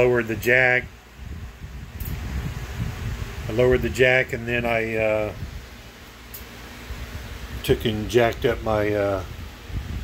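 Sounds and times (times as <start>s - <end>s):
fan air buffeting microphone: 0.0s - 10.0s.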